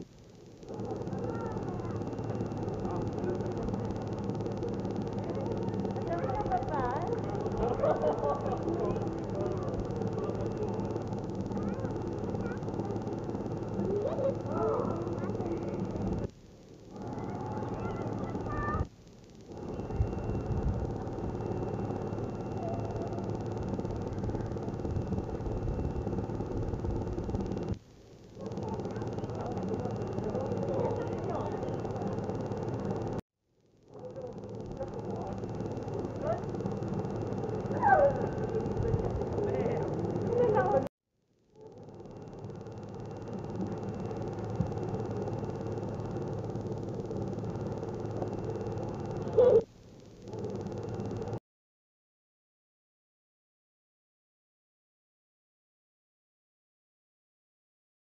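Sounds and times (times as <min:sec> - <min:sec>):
machine running with flutter: 0:00.0 - 0:51.4
small motor whirring: 0:00.0 - 0:51.4.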